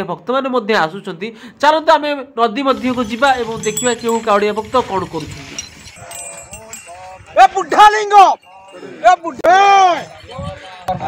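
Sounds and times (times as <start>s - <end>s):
men calling out: 6.0s - 11.0s.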